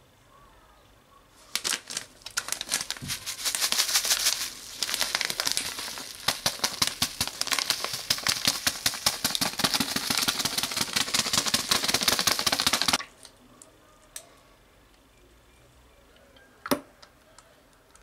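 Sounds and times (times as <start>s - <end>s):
seasoning packet rattling: 1.6s - 13.0s.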